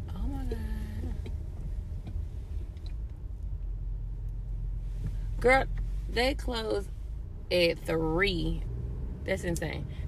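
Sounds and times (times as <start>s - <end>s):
car driving heard from inside: 0.0s - 10.0s.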